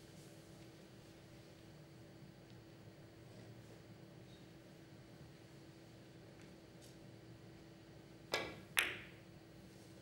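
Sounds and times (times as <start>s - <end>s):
billiard balls clicking together: 8.3s - 9.2s.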